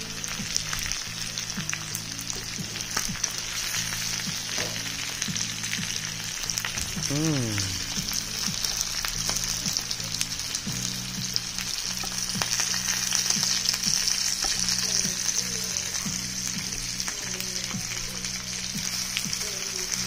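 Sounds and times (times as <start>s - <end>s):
meat sizzling in a frying pan: 0.0s - 20.0s.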